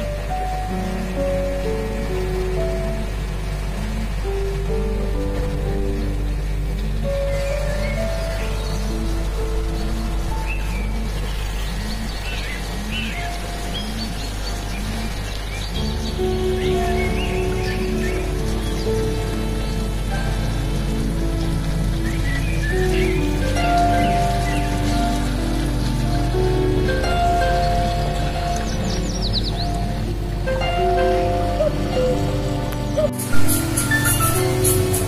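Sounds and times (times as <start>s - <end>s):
bird chirps: 7.0s - 35.0s.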